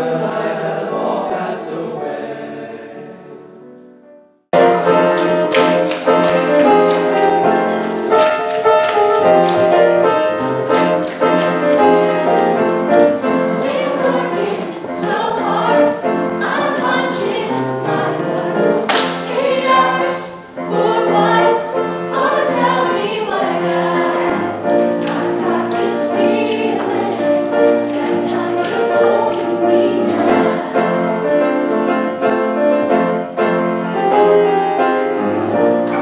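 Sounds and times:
mixed choir singing: 0.0 - 3.7, 4.6 - 36.0.

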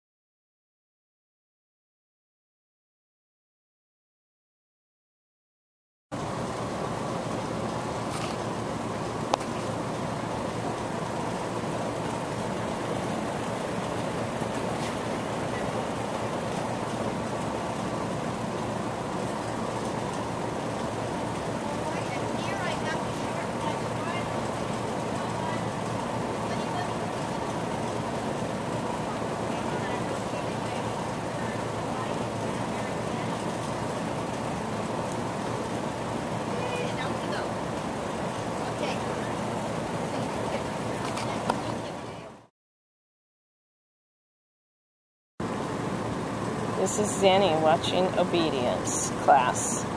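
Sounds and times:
large fan rushing air: 6.1 - 42.5, 45.4 - 49.9.

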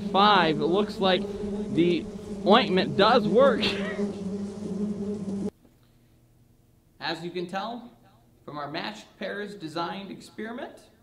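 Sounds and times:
bees buzzing: 0.0 - 5.5.

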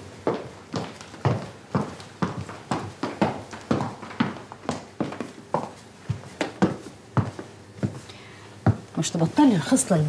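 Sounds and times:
hard-soled footsteps on hard floor: 0.2 - 9.1.

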